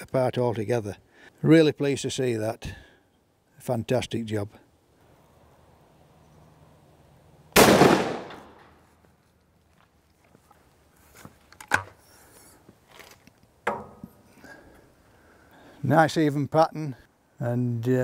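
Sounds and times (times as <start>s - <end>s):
shotgun shot: 7.6s - 8.7s.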